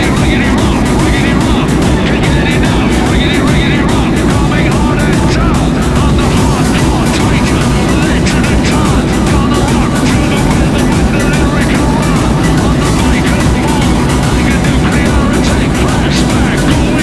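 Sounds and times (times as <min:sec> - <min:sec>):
airliner cabin rumble: 0:00.0 - 0:17.0
passenger chatter: 0:00.0 - 0:17.0.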